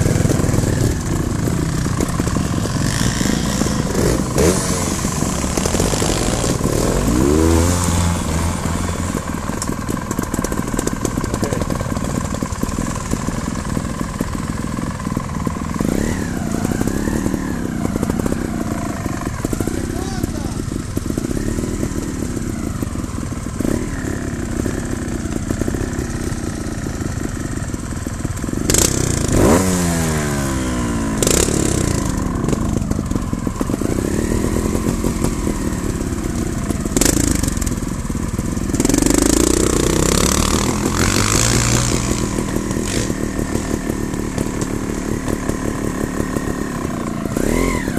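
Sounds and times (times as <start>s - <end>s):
motorcycle engines revving: 0.0s - 47.9s.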